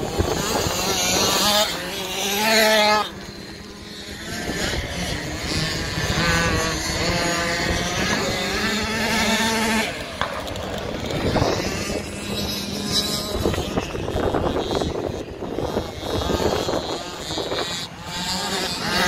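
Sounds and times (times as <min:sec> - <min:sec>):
two-stroke dirt bikes revving: 0:00.0 - 0:19.0.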